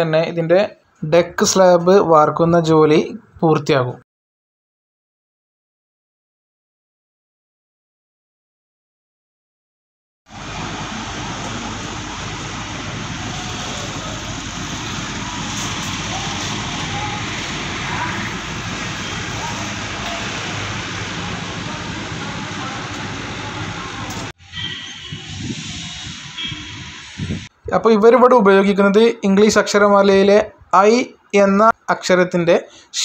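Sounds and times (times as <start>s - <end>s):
rushing roadside noise: 10.3s - 27.6s
faint voices: 10.6s - 24.3s.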